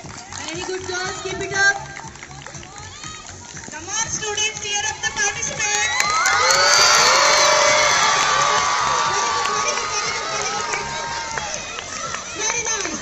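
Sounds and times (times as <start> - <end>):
children cheering and shouting: 4.9 - 13.0.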